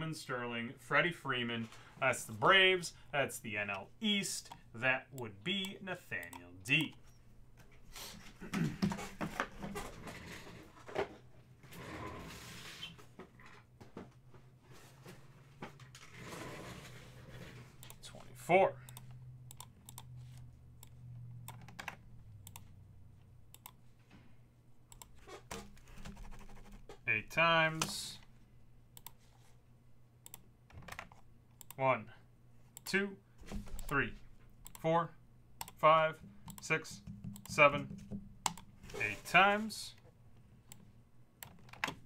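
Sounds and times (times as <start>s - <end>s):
computer mouse clicks: 17.8s - 18.3s, 18.9s - 22.7s, 23.5s - 23.8s, 24.9s - 25.2s, 29.0s - 29.2s, 30.2s - 31.8s, 34.6s - 34.8s
keyboard clicks: 18.9s - 22.7s, 36.5s - 38.7s.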